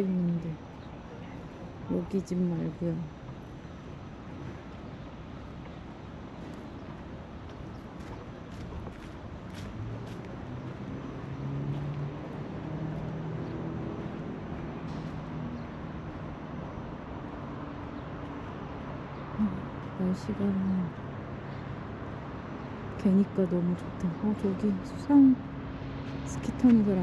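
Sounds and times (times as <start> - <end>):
steady outdoor noise: 0.0 - 27.0
vehicle engine hum passing: 6.3 - 27.0.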